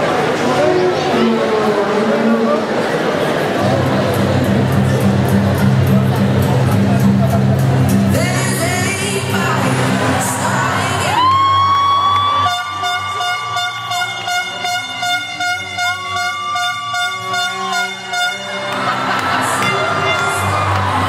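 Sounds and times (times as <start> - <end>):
skating music: 3.6 - 21.0
air horn blasts: 12.4 - 21.0.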